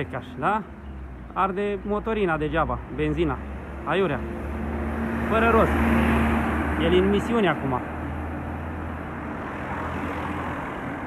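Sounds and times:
van driving past: 3.0 - 11.0.

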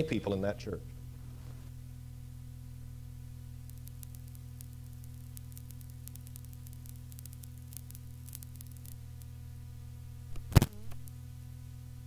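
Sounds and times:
low electrical hum and hiss: 0.0 - 12.0
faint crackles: 3.5 - 9.5, 10.2 - 11.2.

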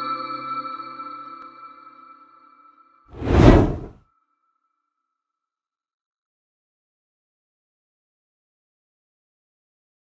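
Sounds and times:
whoosh transition effect: 3.2 - 3.9.

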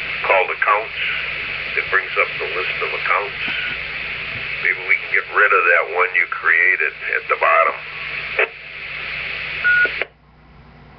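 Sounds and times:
radio speaker hiss: 0.0 - 10.2.

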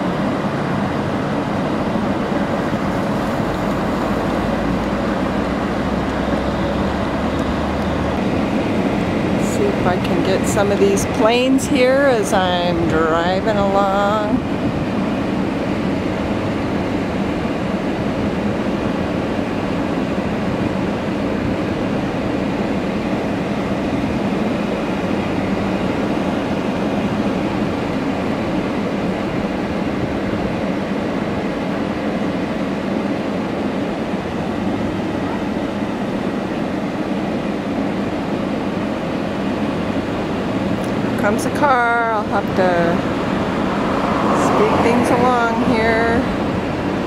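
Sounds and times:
car engine running: 0.0 - 31.8, 37.5 - 47.0.

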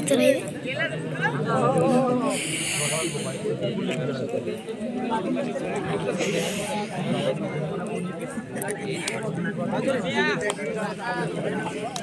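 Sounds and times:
crowd chatter: 0.0 - 12.0
hiss: 2.3 - 3.4.

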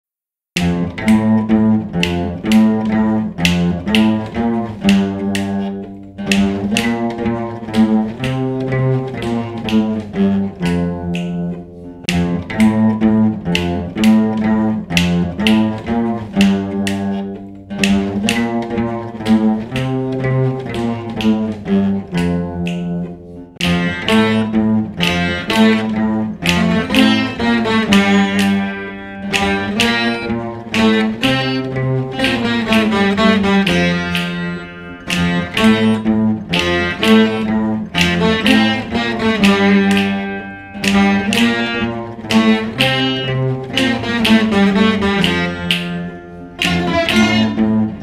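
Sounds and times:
plucked string melody: 0.6 - 48.0.

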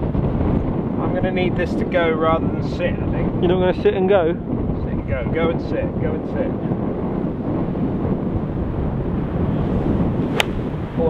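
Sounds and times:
wind on microphone: 0.0 - 11.0
golf club striking ball: 10.2 - 10.8.

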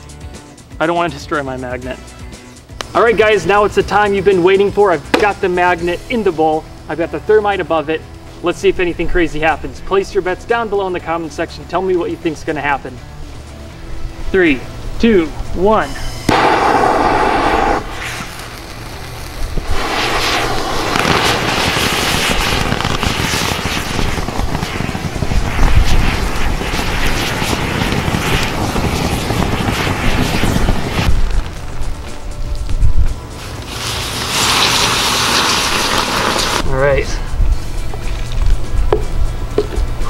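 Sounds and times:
thermite burning with hissing roar: 2.8 - 38.8.

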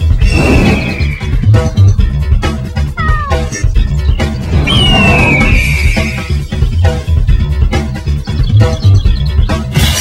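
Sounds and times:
cat meowing: 3.0 - 3.5.

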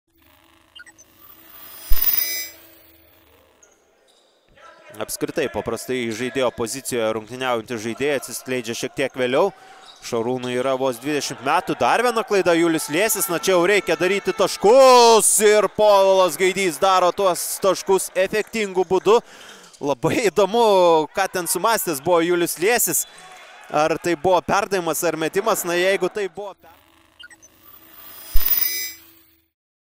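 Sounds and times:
electronic logo sting: 0.4 - 3.3, 27.2 - 29.4
ringing bell-like shimmer: 1.2 - 3.3, 27.6 - 29.4.

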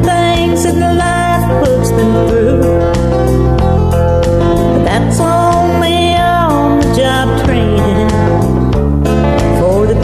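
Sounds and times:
country song with guitar: 0.0 - 10.0.

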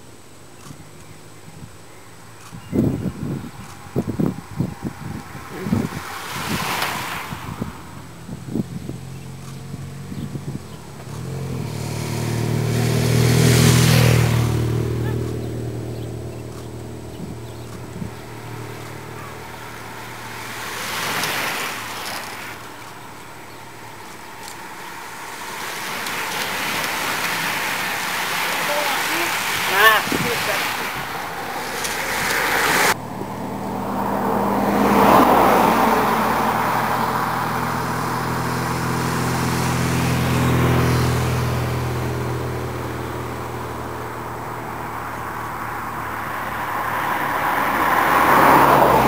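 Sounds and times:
vehicle passing on wet road: 1.1 - 49.0
bicycle tyres hissing on wet tarmac: 3.1 - 33.0.

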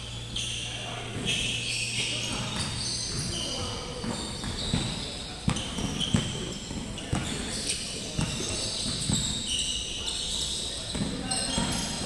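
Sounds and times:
distant players' voices: 0.0 - 12.0
shoe squeaks: 0.0 - 12.0
basketballs bouncing on hardwood: 2.5 - 7.4, 8.2 - 9.3.

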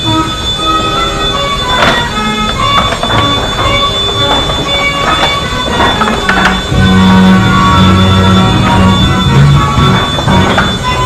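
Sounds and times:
carousel band organ playing: 0.0 - 11.0.

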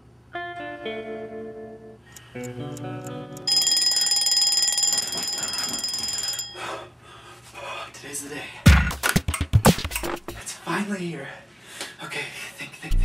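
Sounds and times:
soft guitar music: 0.3 - 3.5
alarm clock ringing: 3.5 - 6.9.

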